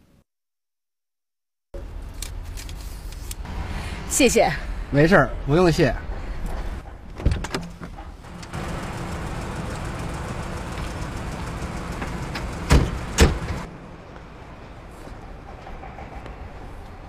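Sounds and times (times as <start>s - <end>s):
vehicle engine rumbling: 1.8s - 17.0s
car door shutting: 12.3s - 13.7s.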